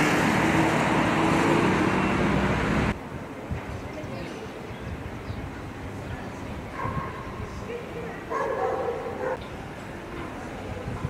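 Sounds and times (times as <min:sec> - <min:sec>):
low hum of traffic: 0:00.0 - 0:11.0
dog yelping: 0:06.8 - 0:09.4.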